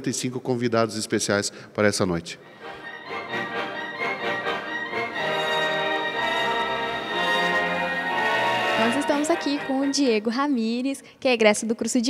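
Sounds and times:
symphony orchestra strings playing: 0:02.6 - 0:10.5.

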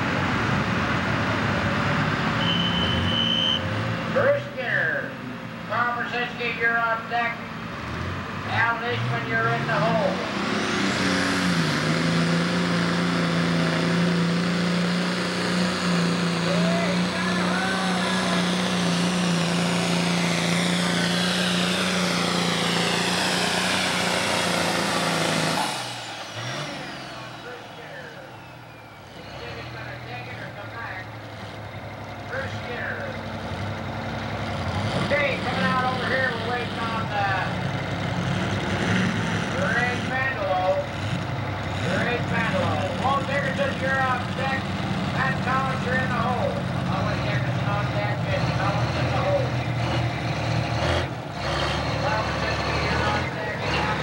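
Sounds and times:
tractor diesel engine at full throttle: 0:00.0 - 0:54.0
tractor engine idling: 0:12.4 - 0:54.0
people's voices: 0:16.3 - 0:20.0, 0:34.8 - 0:37.6, 0:41.6 - 0:50.0, 0:51.9 - 0:54.0.

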